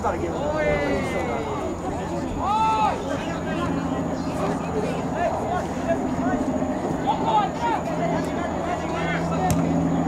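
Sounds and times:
distant shouting voices: 0.0s - 10.0s
soccer ball kick thud: 9.5s - 9.7s.

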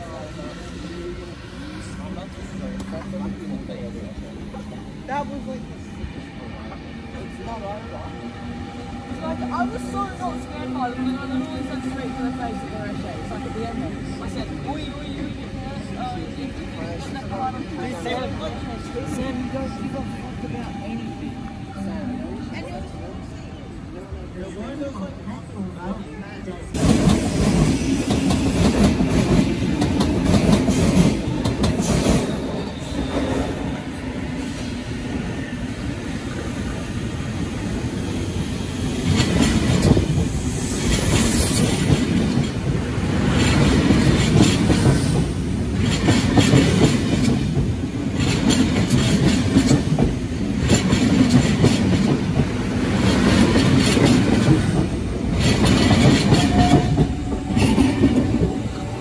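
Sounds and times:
electric train passing close: 0.0s - 59.0s
clickety-clack over rail joints: 26.8s - 32.4s, 40.9s - 58.7s.

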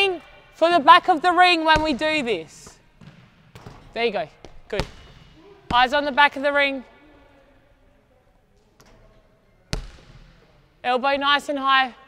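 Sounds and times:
basketball bouncing on wooden floor: 1.7s - 6.2s, 9.7s - 10.3s.

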